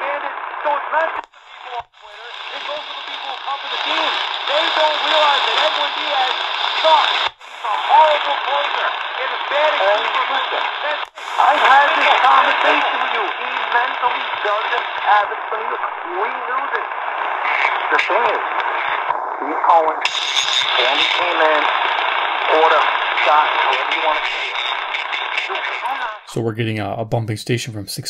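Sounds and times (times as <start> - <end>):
hissy radio talk: 0.0 - 28.0
interfering radio station: 0.0 - 28.0.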